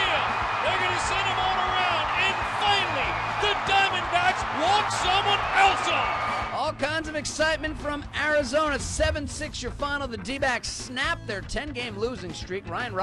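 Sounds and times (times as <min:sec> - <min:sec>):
stadium crowd cheering: 0:00.0 - 0:08.9.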